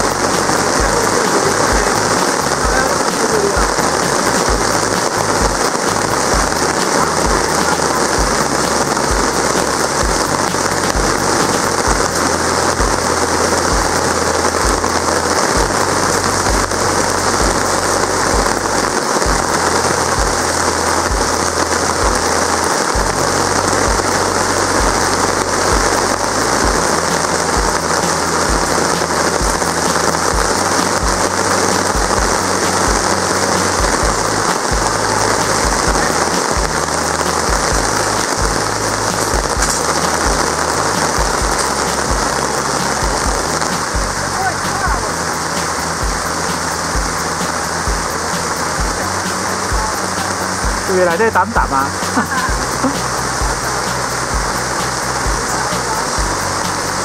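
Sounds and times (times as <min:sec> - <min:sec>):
heavy rain on grass and gravel: 0:00.0 - 0:57.0.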